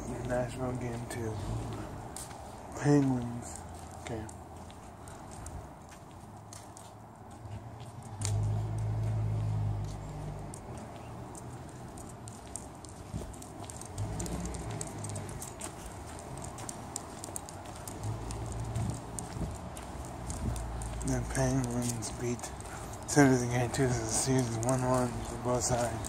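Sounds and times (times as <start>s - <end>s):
faint footstep clicks: 0.0s - 26.0s
wind rumble on microphone: 7.3s - 26.0s.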